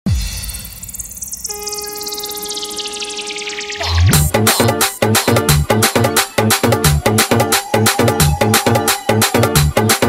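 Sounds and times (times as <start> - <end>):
stuttering pitch sweep: 0.8 - 4.3
dance track: 3.4 - 10.0.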